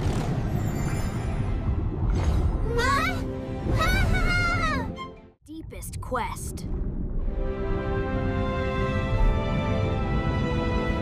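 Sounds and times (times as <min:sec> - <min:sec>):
background music: 0:01.7 - 0:11.0.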